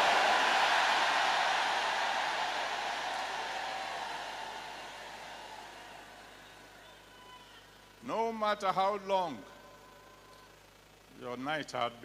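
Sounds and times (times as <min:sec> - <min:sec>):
crowd shouting and cheering: 0:00.0 - 0:07.7.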